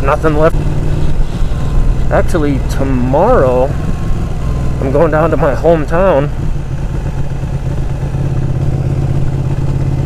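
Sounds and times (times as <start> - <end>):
motorcycle engine cruising: 0.0 - 10.0.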